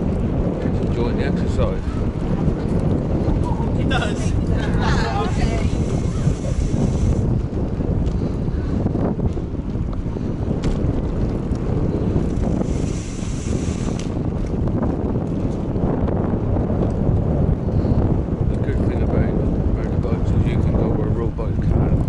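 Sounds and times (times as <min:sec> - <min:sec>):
wind buffeting microphone: 0:00.0 - 0:22.0
faint knocks from bicycle ride: 0:09.2 - 0:12.5.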